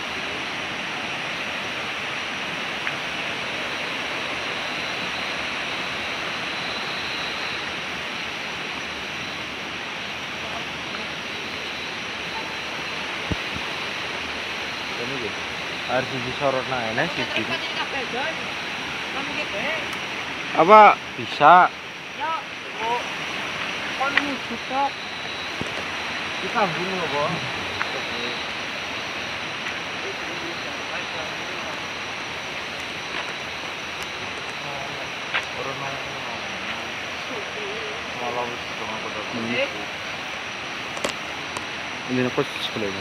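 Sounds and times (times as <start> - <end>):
river water rushing: 0.0 - 43.0
faint voices talking: 14.8 - 40.3.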